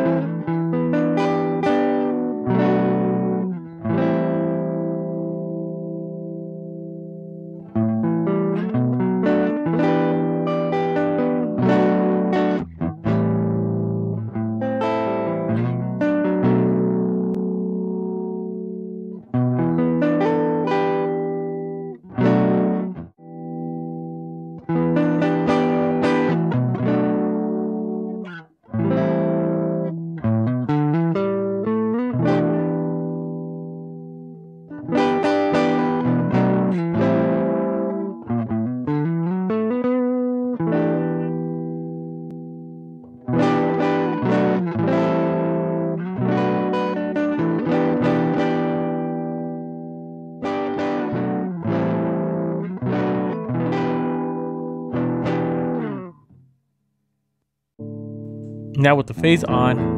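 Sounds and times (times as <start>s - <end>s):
overdriven electric guitar chords: 0.0s - 56.4s, 57.8s - 59.9s.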